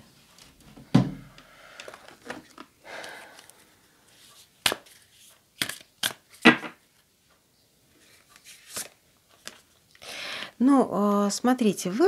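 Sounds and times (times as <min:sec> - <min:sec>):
card deck snaps: 0:05.6 - 0:06.6.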